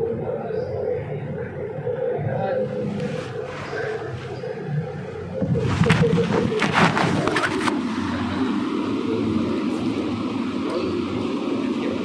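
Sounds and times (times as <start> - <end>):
low hum: 0.0 - 12.0
steady background noise: 0.0 - 12.0.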